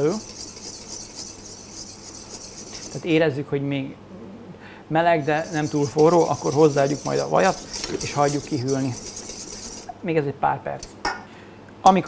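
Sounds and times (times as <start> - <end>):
whisk scraping steel bowl: 0.0 - 3.1, 5.4 - 10.0.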